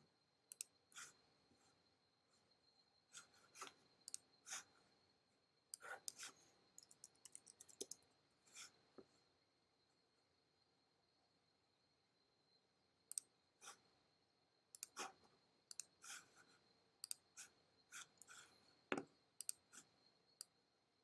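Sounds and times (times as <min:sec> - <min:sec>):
faint high whine: 0:00.0 - 0:21.0
computer mouse clicks: 0:00.5 - 0:01.1, 0:03.6 - 0:04.3, 0:05.7 - 0:08.0, 0:13.1 - 0:13.8, 0:14.7 - 0:15.1, 0:15.7 - 0:16.1, 0:17.0 - 0:20.5.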